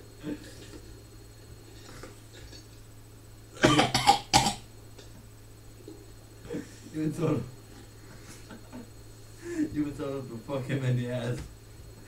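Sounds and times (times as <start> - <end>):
low steady hum: 0.0 - 12.0
young man coughing: 3.6 - 4.6.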